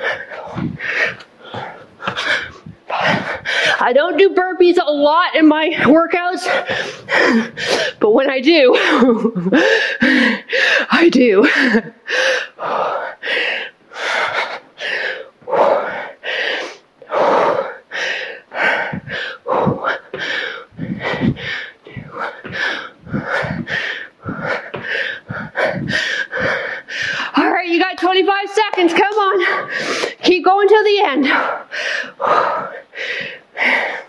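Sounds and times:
feet landing thuds: 0.0 - 3.7, 18.7 - 27.2
woman breathing hard and gasping: 0.0 - 3.9, 6.2 - 8.0, 8.6 - 27.5, 29.2 - 34.0.

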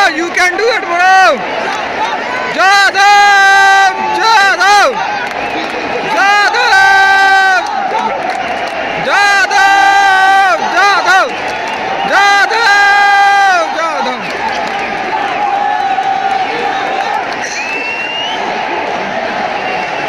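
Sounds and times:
man shouting a chant: 0.0 - 5.2, 5.8 - 8.2, 9.0 - 11.3, 12.0 - 14.3
stadium crowd noise: 0.0 - 20.0.

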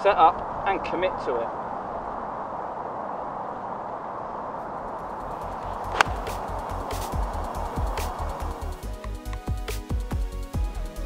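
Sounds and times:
outdoor background noise: 0.0 - 10.4
golf club striking ball: 4.9 - 8.8
background music with steady beat: 5.2 - 11.0.

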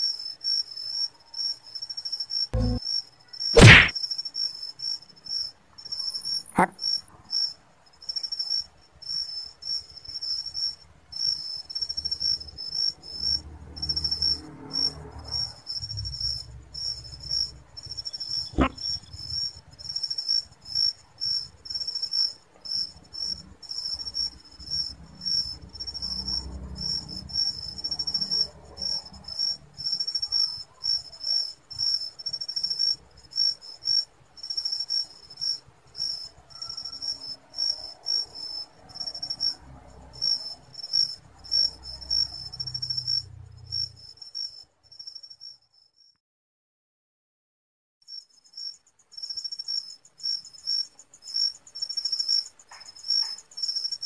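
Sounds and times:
cricket chirping: 0.0 - 46.1, 48.0 - 54.0
sharp click: 3.6 - 3.9.

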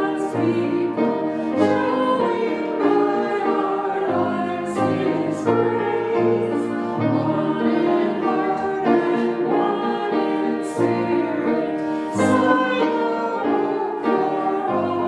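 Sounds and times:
voices singing a slow hymn: 0.0 - 15.0.

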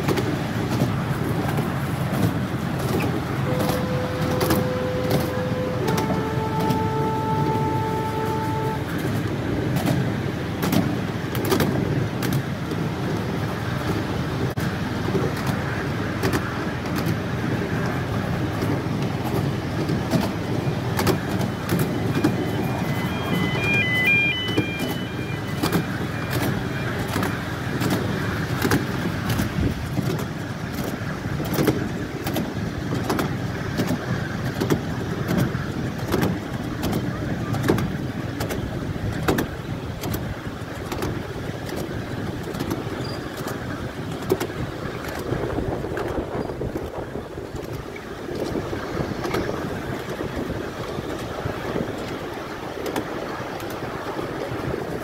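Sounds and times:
clicks over rail joints: 0.0 - 23.7, 24.5 - 55.0
train wheels rumbling on rail: 0.0 - 55.0.

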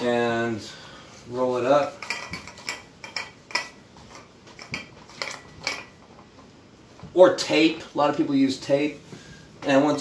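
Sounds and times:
metal dumbbell plates clinking: 1.9 - 6.0.

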